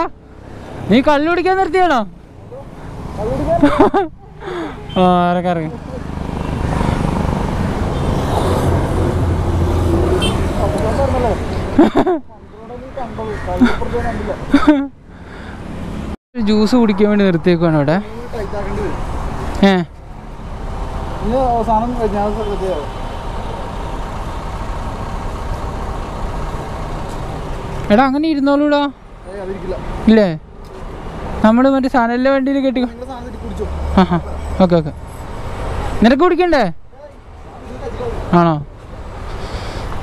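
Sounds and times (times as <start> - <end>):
road traffic noise: 0.0 - 40.0.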